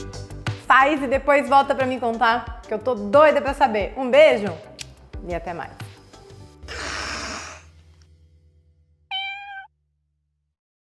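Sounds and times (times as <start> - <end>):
cat meow: 9.1 - 9.7.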